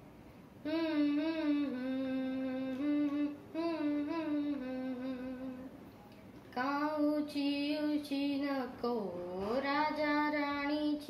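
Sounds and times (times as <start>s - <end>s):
person humming a tune: 0.6s - 5.8s.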